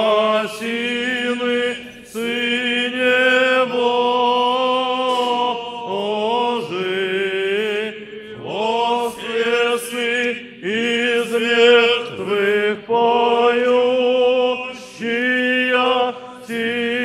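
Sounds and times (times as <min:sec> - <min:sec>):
choir singing chant: 0:00.0 - 0:17.0.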